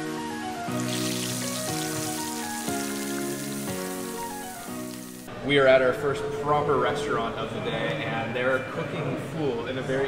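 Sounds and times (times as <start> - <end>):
hot oil sizzling: 0.0 - 5.3
background music: 0.0 - 10.0.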